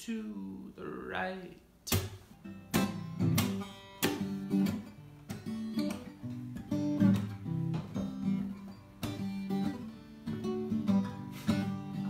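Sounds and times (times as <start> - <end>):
acoustic guitar strumming chords: 1.9 - 12.0.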